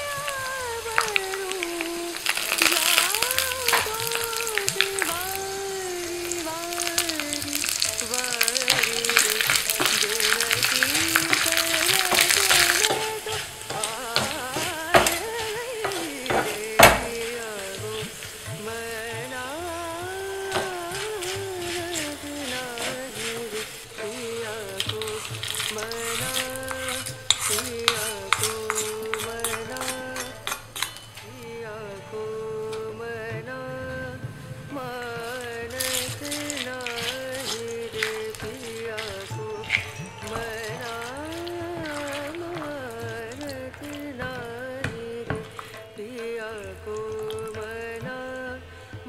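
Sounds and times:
spices sizzling in hot oil: 0.0s - 33.6s, 34.2s - 49.0s
background music with singing: 0.0s - 49.0s
wooden spatula stirring: 1.0s - 31.0s, 34.8s - 48.2s
sharp knocks on pan: 12.2s - 17.3s.

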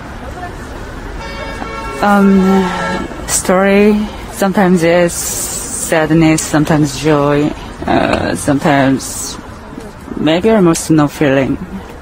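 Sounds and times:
steady background noise: 0.0s - 12.0s
person saying um: 2.0s - 9.4s.

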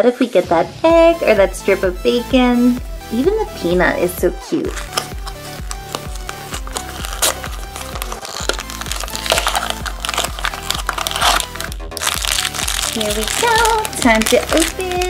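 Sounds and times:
background music with steady beat: 0.3s - 15.0s
packaging crinkling: 4.7s - 15.0s.

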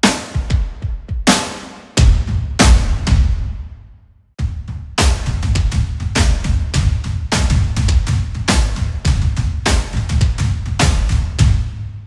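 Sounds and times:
deep kick drum hits: 2.0s - 3.8s.

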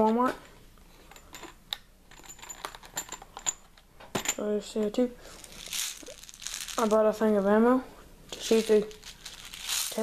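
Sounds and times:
metal cartridges clicking and rattling: 1.1s - 4.4s, 5.4s - 7.1s, 8.3s - 10.0s.

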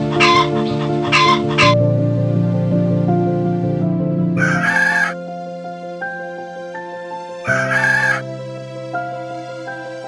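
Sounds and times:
background music with held notes: 0.0s - 10.0s
rooster crowing: 4.4s - 5.2s, 7.5s - 8.2s.

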